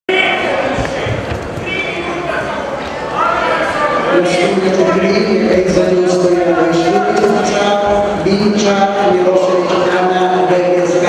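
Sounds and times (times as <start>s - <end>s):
voices calling out in a hall: 0.1s - 11.0s.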